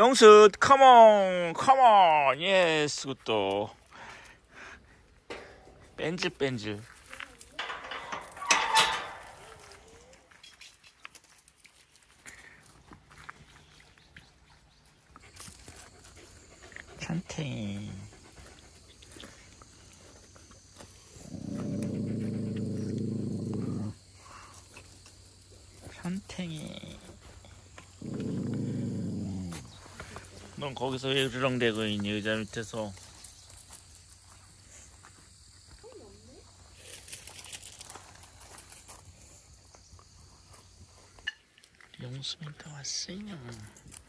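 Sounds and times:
dog grumbling groan: 21.2 - 24.0, 28.0 - 29.7.

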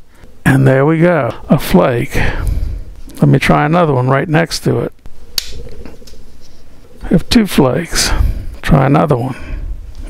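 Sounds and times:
stone flake snapping off: 5.4 - 6.2.

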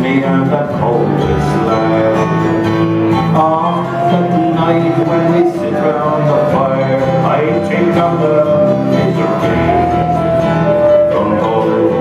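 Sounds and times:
mandolin: 0.0 - 12.0
strummed acoustic guitar: 0.0 - 12.0
low whistle melody: 1.0 - 12.0.

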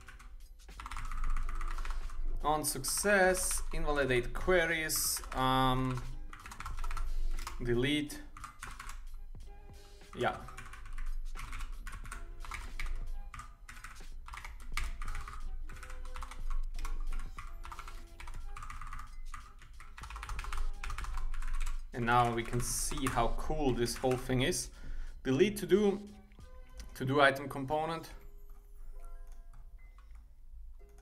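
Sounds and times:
computer keyboard typing: 0.0 - 9.2, 10.0 - 24.7, 29.0 - 31.0.

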